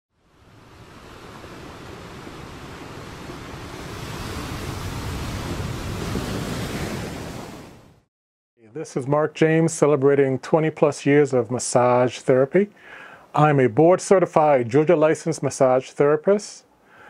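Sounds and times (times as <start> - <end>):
ocean waves rushing: 0.2 - 8.1.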